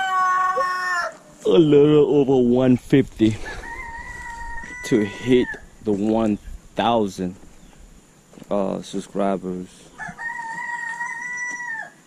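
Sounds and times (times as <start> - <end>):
rooster crowing: 0.0 - 1.3, 3.4 - 5.8, 9.9 - 12.0.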